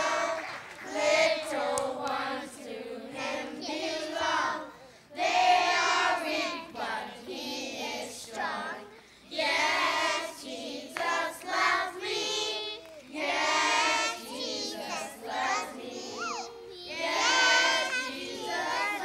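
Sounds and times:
children singing: 0.0 - 19.0.

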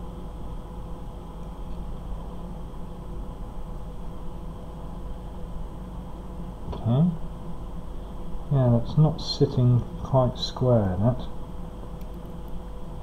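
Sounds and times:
background hum and hiss: 0.0 - 13.0.

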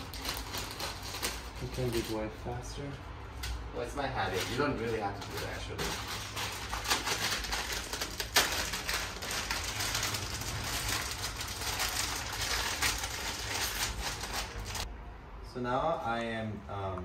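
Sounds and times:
plastic wrapper crinkling: 0.0 - 2.2, 4.3 - 14.9
dry noodles crackling: 0.0 - 2.6, 3.8 - 14.9.

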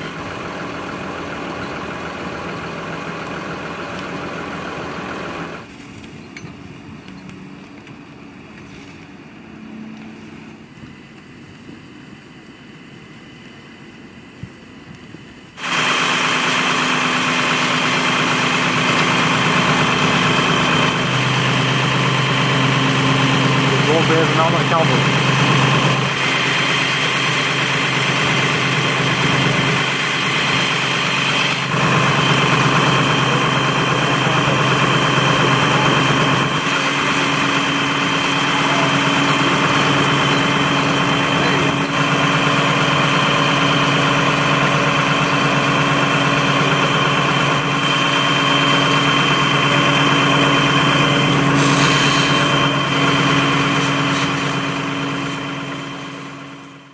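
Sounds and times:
fire engine humming: 0.0 - 56.9.

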